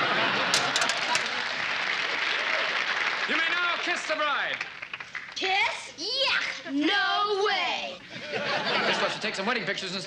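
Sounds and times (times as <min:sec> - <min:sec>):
studio audience applause: 0:00.5 - 0:05.4.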